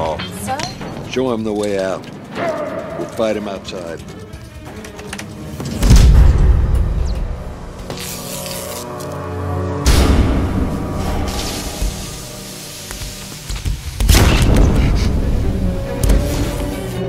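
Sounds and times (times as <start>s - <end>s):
tense film score: 0.0s - 17.0s
deep booming hits: 5.8s - 7.8s, 9.8s - 12.0s, 14.0s - 16.2s.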